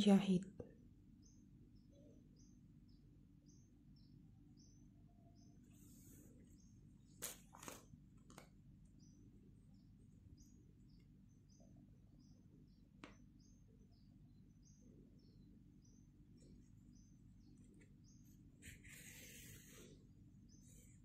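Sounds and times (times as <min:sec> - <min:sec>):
bird chirping: 0:00.0 - 0:08.0, 0:08.6 - 0:21.0.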